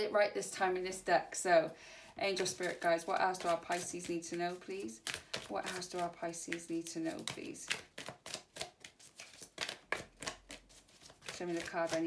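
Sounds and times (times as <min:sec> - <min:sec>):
cards being shuffled: 0:02.3 - 0:12.0.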